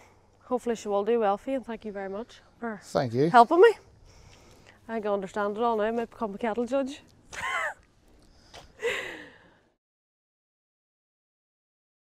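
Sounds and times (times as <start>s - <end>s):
person laughing gasp: 8.8s - 9.5s.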